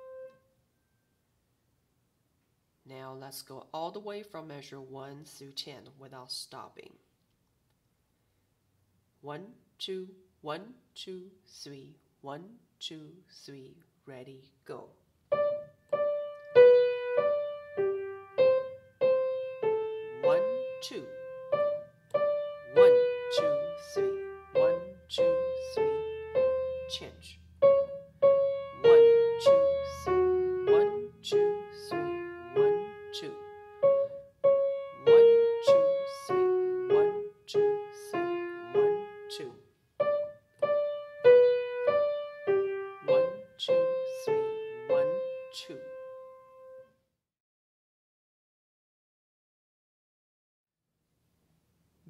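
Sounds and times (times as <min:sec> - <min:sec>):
slow piano notes: 0:00.0 - 0:00.5, 0:15.3 - 0:46.9.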